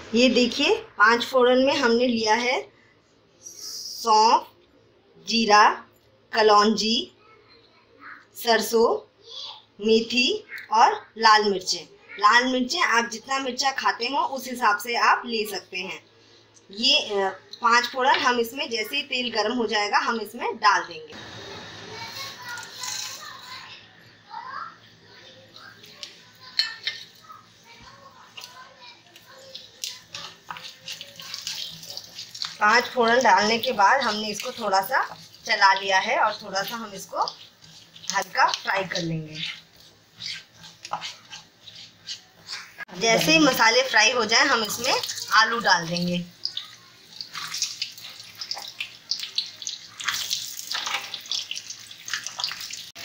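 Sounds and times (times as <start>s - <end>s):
spices sizzling in hot oil: 16.7s - 53.0s.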